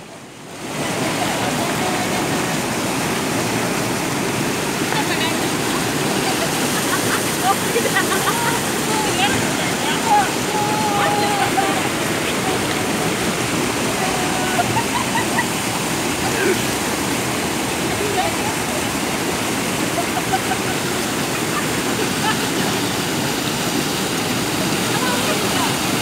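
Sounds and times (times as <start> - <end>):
water pouring over spillway: 0.0 - 26.0.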